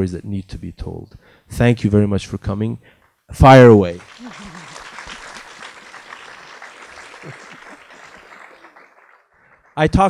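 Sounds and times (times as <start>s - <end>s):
audience applauding: 3.8s - 10.0s.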